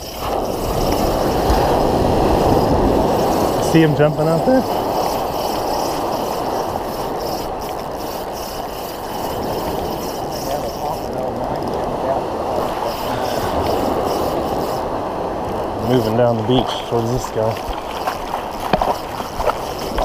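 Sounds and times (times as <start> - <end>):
small waves breaking on beach: 0.0 - 20.0.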